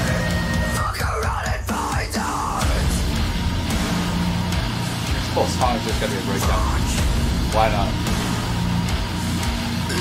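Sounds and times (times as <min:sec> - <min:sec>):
drums: 0:00.0 - 0:10.0
distorted guitar: 0:02.7 - 0:10.0.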